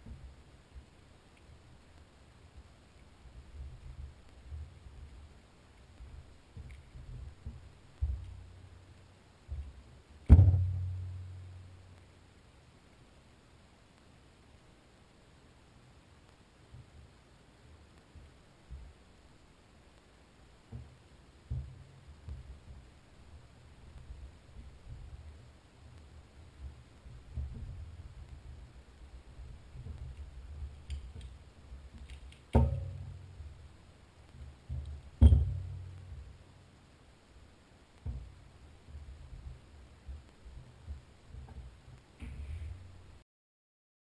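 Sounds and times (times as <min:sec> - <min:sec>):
handling bumps and small clicks: 0:02.9 - 0:11.3, 0:20.7 - 0:36.5, 0:38.0 - 0:43.2
sharp knocks: 0:09.5 - 0:11.1, 0:32.0 - 0:33.4, 0:34.7 - 0:36.0.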